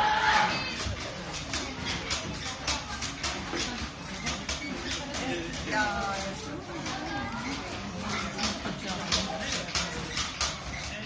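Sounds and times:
indistinct chatter: 0.0 - 11.0.

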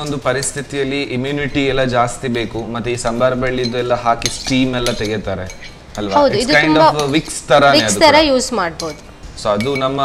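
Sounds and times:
metal spoon scraping glass bowl: 3.4 - 8.0
people talking: 6.0 - 10.0.

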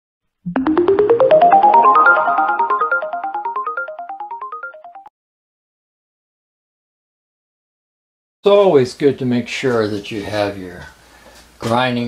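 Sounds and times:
electronic jingle: 0.5 - 5.1.

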